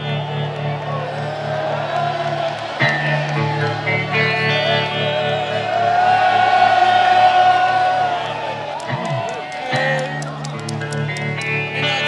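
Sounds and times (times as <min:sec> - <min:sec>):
live rock band playing: 0:02.8 - 0:06.0.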